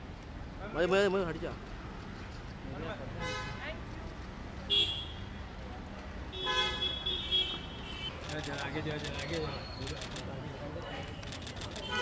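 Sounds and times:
low traffic rumble: 0:00.0 - 0:12.0
vehicle horns honking: 0:06.3 - 0:08.2.

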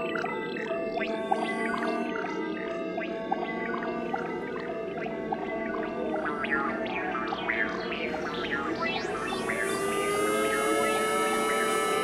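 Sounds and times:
electronic drone sliding in pitch: 0:08.9 - 0:12.0.

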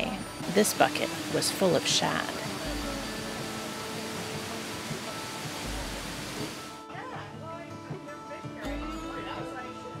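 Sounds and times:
background music: 0:00.0 - 0:10.0
water churning and splashing: 0:00.4 - 0:06.8.

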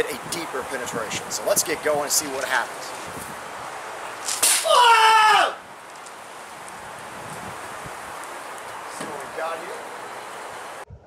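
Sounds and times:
man's loud wordless shout: 0:04.7 - 0:05.6.

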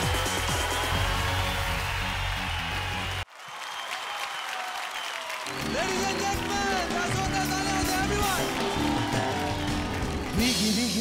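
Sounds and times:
television theme music with heavy bass: 0:00.0 - 0:03.2, 0:05.5 - 0:11.0
studio audience applause: 0:00.0 - 0:11.0.

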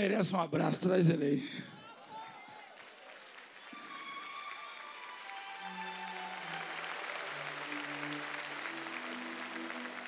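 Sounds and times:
soft music of sustained notes: 0:03.7 - 0:10.0.

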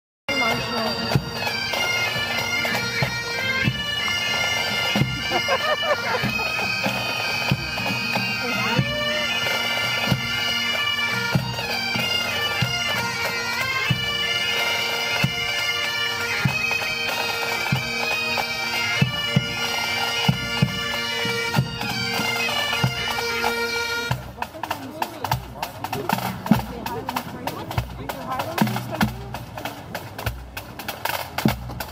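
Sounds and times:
bagpipes playing a tune: 0:00.3 - 0:31.6
snare and bass drums: 0:24.1 - 0:31.9.

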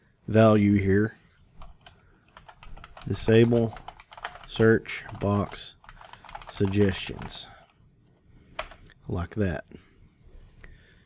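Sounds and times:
typing on computer keyboard: 0:01.6 - 0:07.4, 0:08.6 - 0:08.8.

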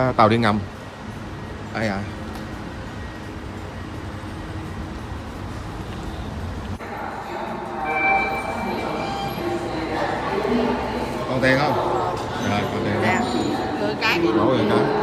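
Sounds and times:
low rumble of subway station: 0:00.0 - 0:15.0.

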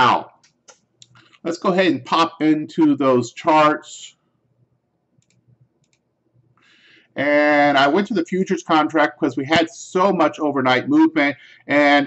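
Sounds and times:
computer mouse clicks: 0:05.2 - 0:06.1.

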